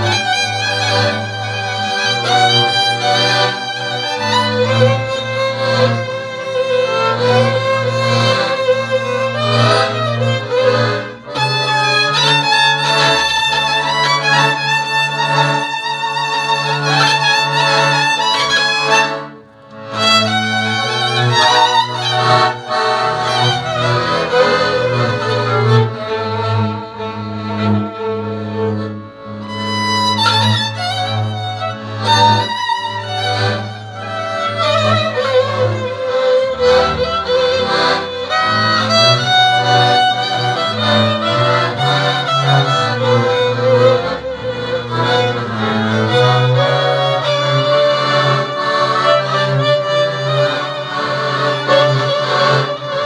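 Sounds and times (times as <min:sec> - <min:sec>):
fiddles playing dance tune: 0:00.0 - 0:53.0
low string accompaniment: 0:00.0 - 0:53.0.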